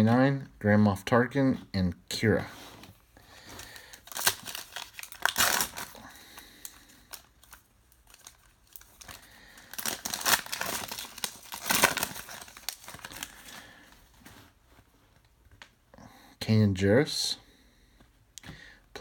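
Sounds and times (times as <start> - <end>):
card pack wrapper crinkling and tearing: 3.5 - 13.8.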